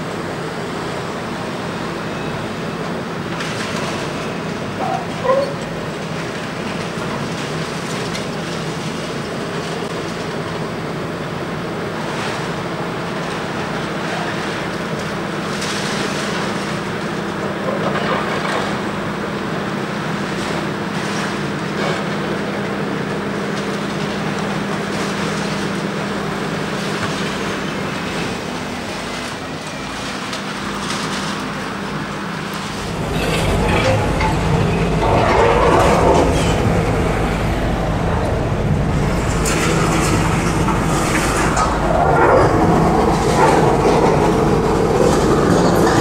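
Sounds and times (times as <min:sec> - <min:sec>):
excavator engine running: 0:30.5 - 0:46.0
deep rumble: 0:32.5 - 0:46.0
debris falling: 0:32.6 - 0:44.4.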